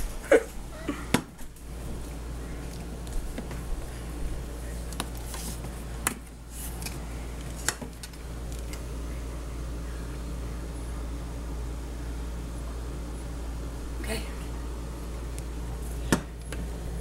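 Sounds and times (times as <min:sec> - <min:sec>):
low background hum: 0:00.0 - 0:17.0.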